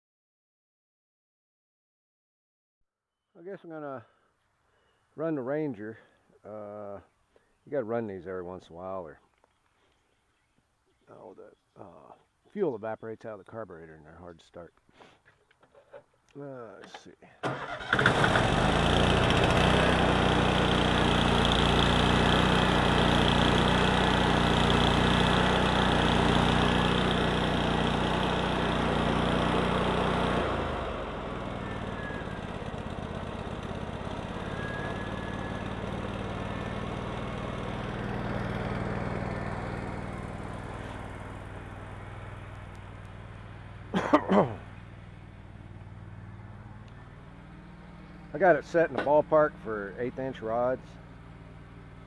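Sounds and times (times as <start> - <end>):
welder engine running: 17.5 - 52.0.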